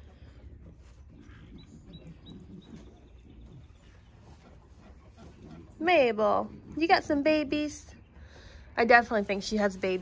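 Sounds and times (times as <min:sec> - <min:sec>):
calf munching grain: 0:00.0 - 0:07.0.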